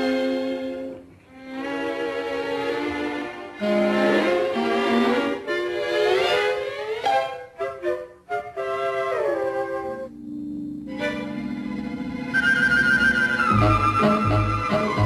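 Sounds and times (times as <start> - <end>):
orchestral film music: 0.0 - 10.2, 10.8 - 15.0.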